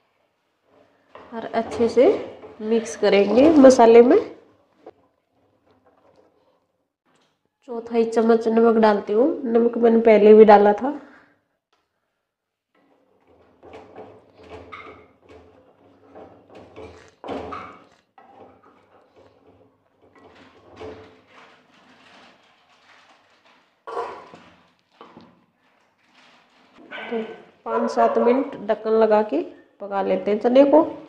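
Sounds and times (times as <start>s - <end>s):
spatula scraping pan: 0.8s - 6.6s.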